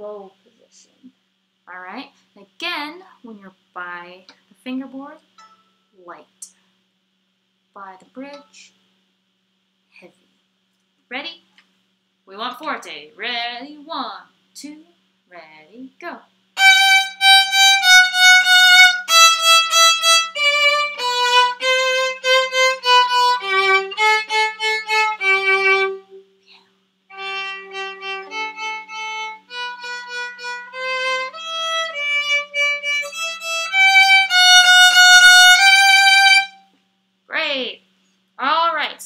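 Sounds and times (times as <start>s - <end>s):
solo violin melody: 16.6s - 26.2s, 27.1s - 36.6s.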